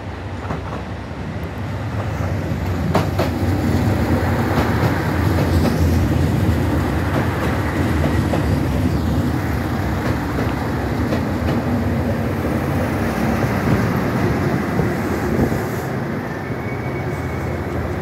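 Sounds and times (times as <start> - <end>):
diesel train rumbling: 0.0 - 18.0.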